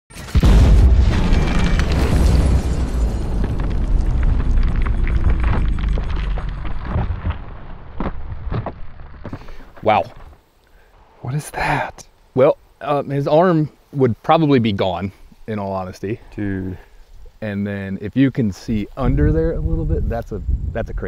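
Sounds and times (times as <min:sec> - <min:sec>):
crackles: 0:00.1 - 0:21.0
slowed shotgun blast rumbling: 0:00.4 - 0:09.2.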